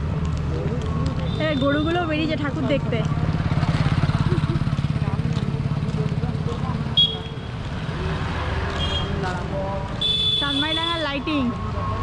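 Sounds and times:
motorcycle engine running: 0:00.7 - 0:08.9.

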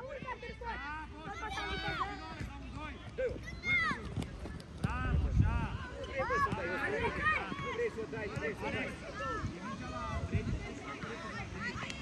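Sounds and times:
children shouting: 0:03.4 - 0:04.2.

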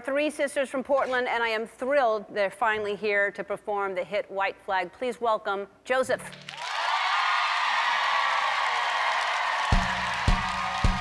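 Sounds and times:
audience applauding and cheering: 0:06.3 - 0:11.0.

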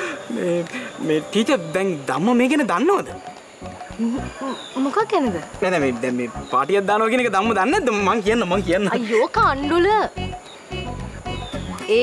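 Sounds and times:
people talking: 0:04.0 - 0:10.2.

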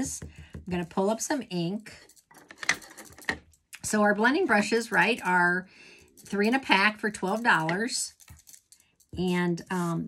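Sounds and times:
metal bracelets jingling: 0:01.8 - 0:09.3.

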